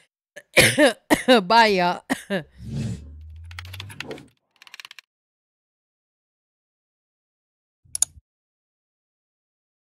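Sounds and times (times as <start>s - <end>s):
low hum: 2.5s - 4.3s.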